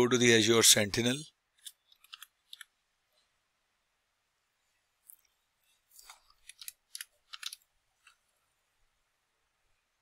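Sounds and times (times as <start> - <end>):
person speaking: 0.0 - 1.4.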